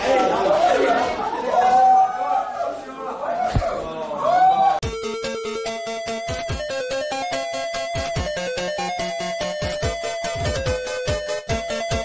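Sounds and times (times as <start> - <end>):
people talking and shouting: 0.0 - 4.9.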